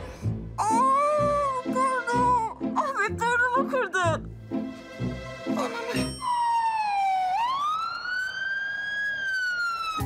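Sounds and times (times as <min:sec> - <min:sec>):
ambulance siren wailing: 0:05.5 - 0:10.0.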